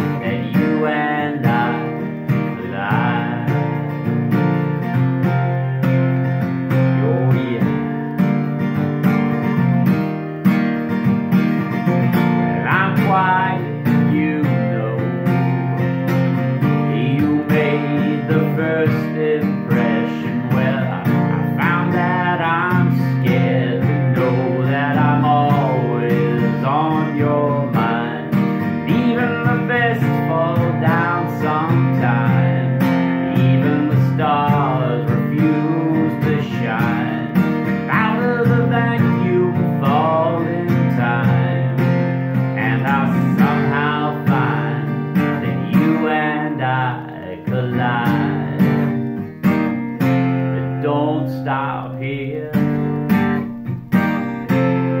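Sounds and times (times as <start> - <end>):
man singing: 0.0 - 8.1, 11.6 - 49.2, 50.0 - 55.0
acoustic guitar strumming: 0.0 - 55.0.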